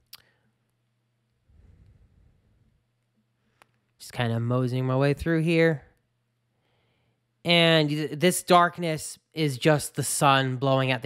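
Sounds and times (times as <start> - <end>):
faint low hum: 0.0 - 11.0
faint low rumble: 1.3 - 6.1.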